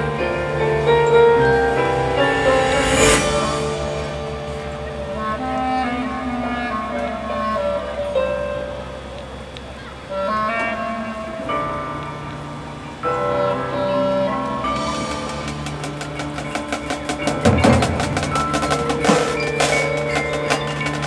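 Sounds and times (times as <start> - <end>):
sustained wind chords: 0.0 - 8.1
repeated percussion strikes: 1.1 - 5.3, 14.8 - 21.0
marching band playing: 1.2 - 5.4, 14.8 - 21.0.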